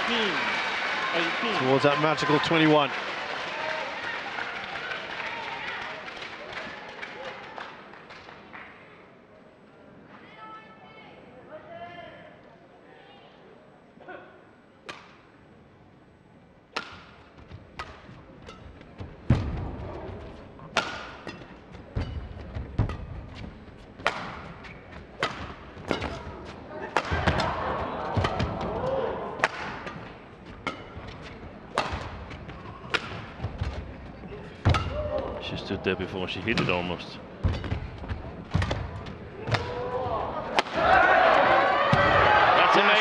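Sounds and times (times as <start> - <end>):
crowd noise: 0.0 - 43.0
rackets striking shuttlecock: 16.7 - 19.4, 20.6 - 23.3, 24.0 - 26.3, 26.9 - 27.6, 29.4 - 33.5
footwork thuds on court: 19.0 - 26.2.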